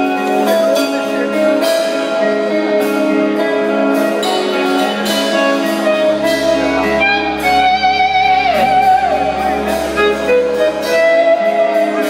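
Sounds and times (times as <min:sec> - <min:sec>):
electric guitar lead melody: 0:00.0 - 0:12.0.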